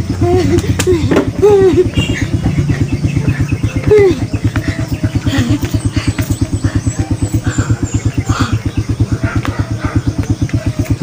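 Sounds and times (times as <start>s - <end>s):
small engine chugging: 0.0s - 11.0s.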